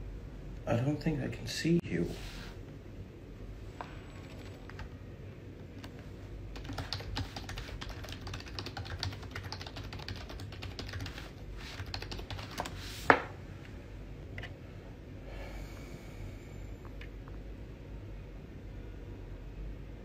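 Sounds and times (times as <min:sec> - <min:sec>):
computer keyboard typing: 0:04.2 - 0:04.9, 0:05.8 - 0:12.8.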